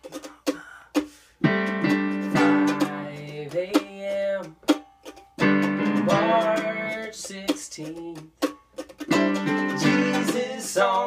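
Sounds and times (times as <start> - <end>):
mandolin strumming: 1.0 - 11.0
digital piano chords: 1.4 - 3.1, 5.4 - 6.9.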